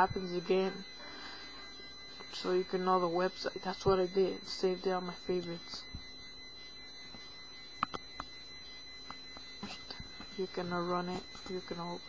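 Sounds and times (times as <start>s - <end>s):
high-pitched whine: 0.0s - 12.0s.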